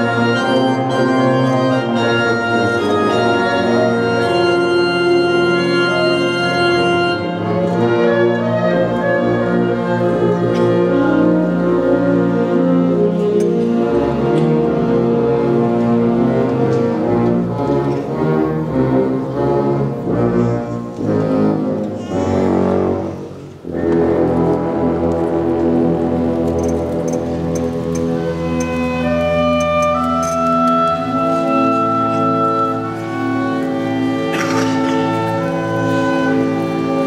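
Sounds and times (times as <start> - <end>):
wind band playing sustained chords: 0.0 - 37.0.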